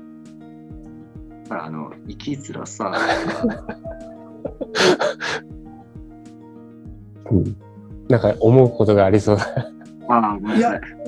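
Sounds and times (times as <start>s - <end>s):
soft background music: 0.0s - 11.0s
man laughing: 3.0s - 5.4s, 9.3s - 9.8s
breathy exhalations: 4.6s - 5.5s.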